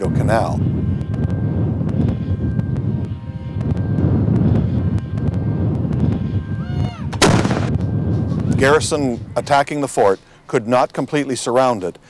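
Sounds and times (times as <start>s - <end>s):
low rumble of artillery: 0.0s - 9.7s
sharp loud cannon report: 6.7s - 9.6s.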